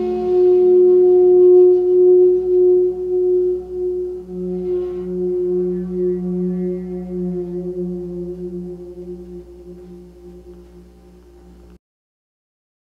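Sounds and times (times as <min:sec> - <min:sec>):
bamboo flute long note: 0:00.0 - 0:11.8.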